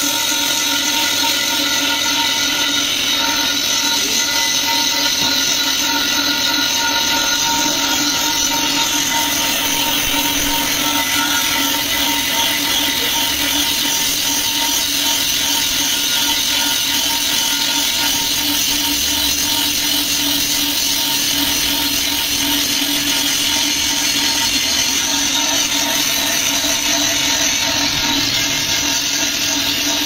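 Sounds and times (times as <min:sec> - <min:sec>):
angle grinder grinding metal: 0:00.0 - 0:30.0.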